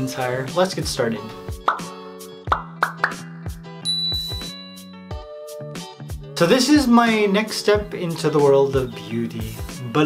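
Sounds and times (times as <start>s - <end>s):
jingle music: 3.8s - 9.4s.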